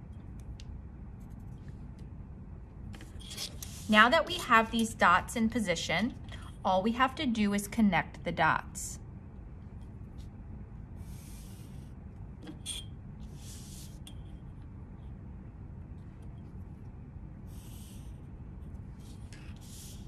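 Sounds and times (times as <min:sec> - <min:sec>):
low room hum: 0:00.0 - 0:20.0
marker scratching on card: 0:11.0 - 0:11.9, 0:13.2 - 0:14.0, 0:17.5 - 0:18.3, 0:18.9 - 0:20.0.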